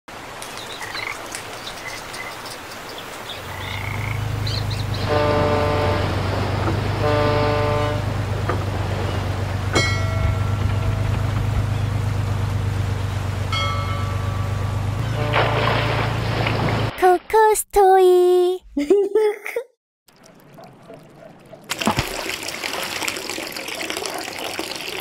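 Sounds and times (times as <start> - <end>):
ship engine drone: 3.4 - 16.9
ship's horn blasts: 4.2 - 16.9.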